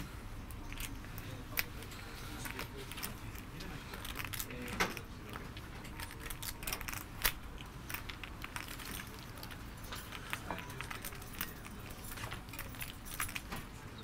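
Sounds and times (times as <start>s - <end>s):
low room hum: 0.0s - 14.0s
poker chips clicking: 2.4s - 13.5s.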